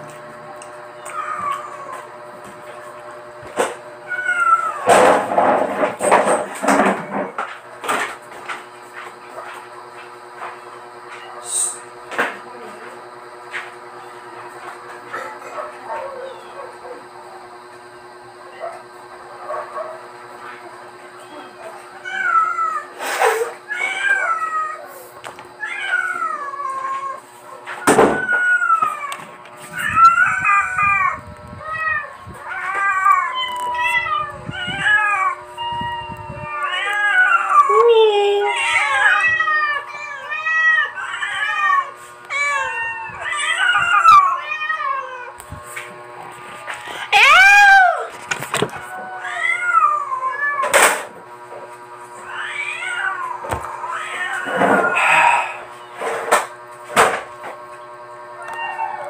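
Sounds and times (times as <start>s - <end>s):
cats meowing: 0.9s - 2.9s, 3.6s - 5.0s, 15.1s - 17.0s, 20.4s - 45.4s, 46.6s - 51.0s, 52.1s - 56.0s, 58.4s - 59.0s.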